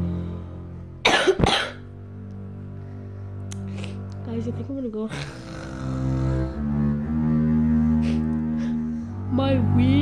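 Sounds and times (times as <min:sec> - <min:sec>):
steady low drone: 0:00.0 - 0:10.0
person coughing: 0:01.0 - 0:01.8.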